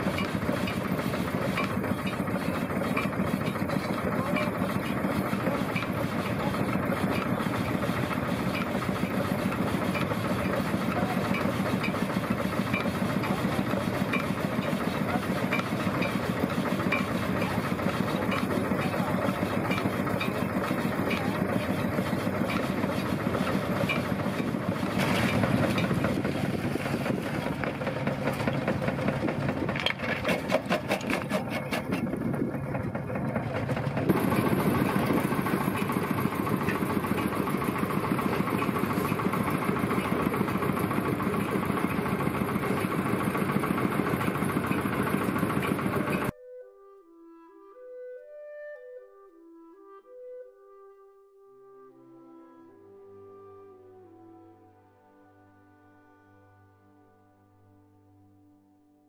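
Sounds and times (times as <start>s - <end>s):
bandsaw mill cutting log: 0.0s - 46.3s
stone crusher running: 0.0s - 46.3s.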